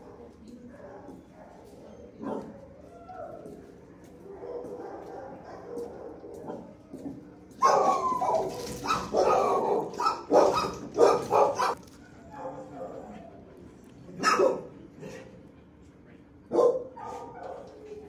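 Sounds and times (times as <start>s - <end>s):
dogs barking: 0.0s - 13.4s, 14.1s - 15.3s, 16.5s - 18.0s.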